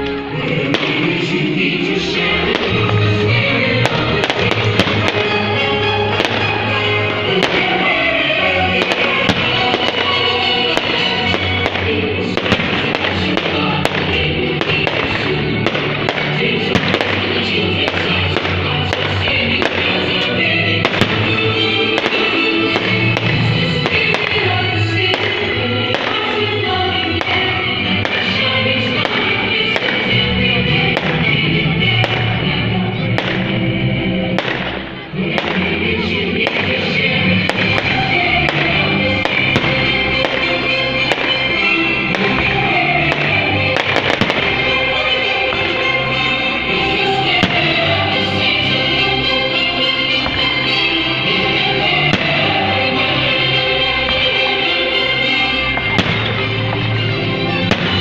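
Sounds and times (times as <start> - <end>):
fireworks banging and crackling: 0.0 - 58.0
music playing: 0.0 - 58.0.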